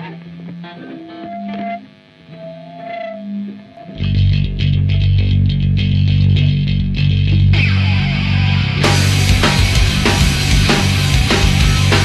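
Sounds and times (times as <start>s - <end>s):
electric guitar held notes: 0.0s - 12.0s.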